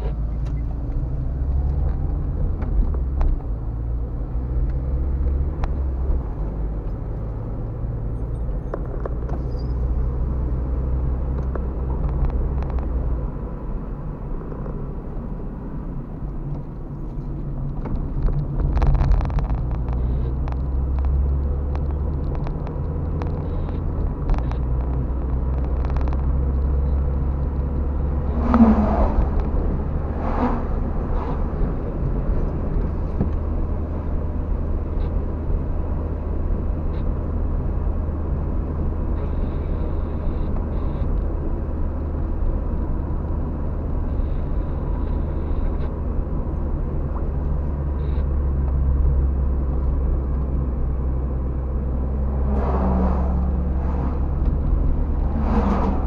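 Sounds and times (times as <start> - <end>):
car engine and road rumble: 0.0 - 56.0
truck passing: 27.0 - 34.2, 51.0 - 56.0.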